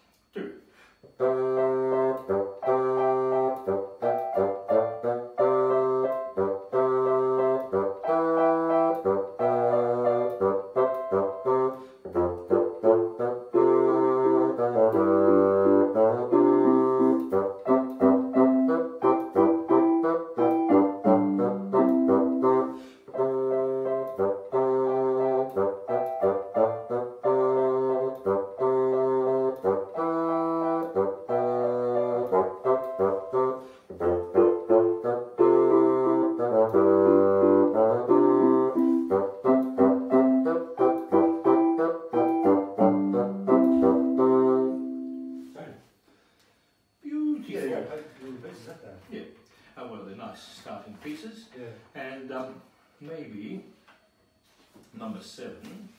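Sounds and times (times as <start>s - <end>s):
bassoon melody: 1.1s - 45.7s
electronic keyboard accompaniment: 1.2s - 45.6s.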